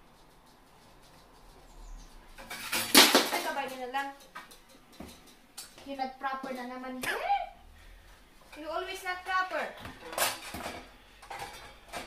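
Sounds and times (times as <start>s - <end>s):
kitchenware clattering in a cupboard: 2.3s - 6.8s, 8.5s - 12.0s.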